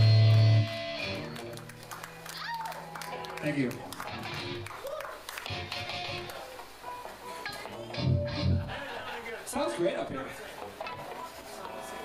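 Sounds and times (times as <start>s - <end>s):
low bass notes: 0.0s - 1.3s
electric guitar notes: 0.0s - 3.4s, 4.0s - 4.7s, 5.4s - 8.7s.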